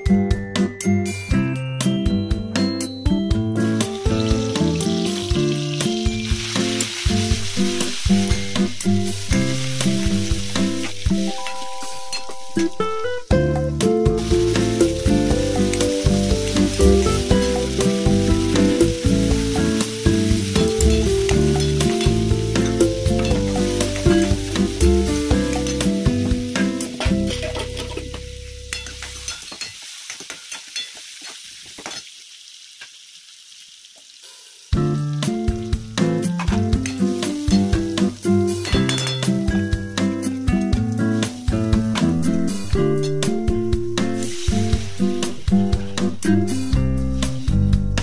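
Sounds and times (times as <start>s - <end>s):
background music: 0.0s - 29.3s, 34.8s - 48.0s
beans sizzling in hot oil: 3.5s - 47.9s.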